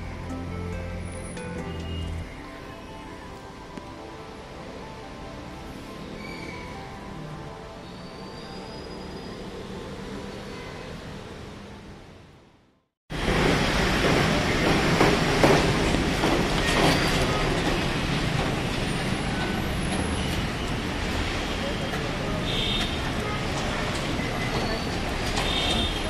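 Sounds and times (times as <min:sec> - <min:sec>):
quiet background music: 0:00.0 - 0:12.8.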